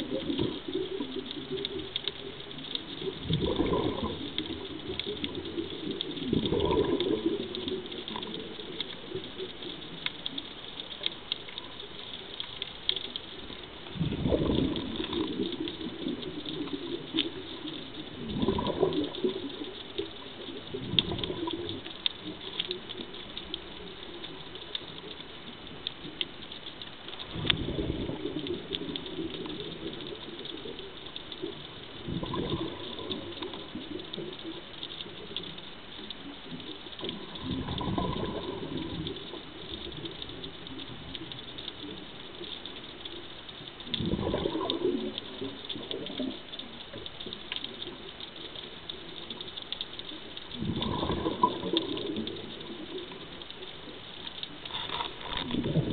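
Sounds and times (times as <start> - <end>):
diver exhale bubbles gurgling: 0.0 - 10.3, 13.5 - 24.8, 27.2 - 35.5, 36.2 - 42.0, 43.8 - 48.1, 50.5 - 54.0, 54.8 - 55.9
underwater clicks crackling: 0.0 - 55.9.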